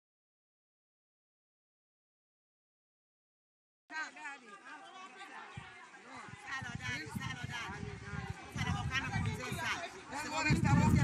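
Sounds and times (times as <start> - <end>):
people chattering: 3.9 - 11.0.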